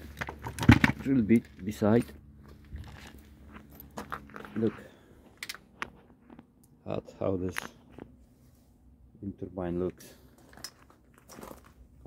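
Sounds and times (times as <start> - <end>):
handling clicks and knocks: 0.0 - 1.7
person speaking: 4.4 - 5.0.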